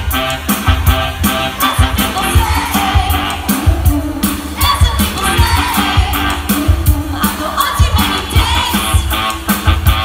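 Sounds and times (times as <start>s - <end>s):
live pop band music: 0.0s - 10.0s
steady drum beat: 0.0s - 10.0s.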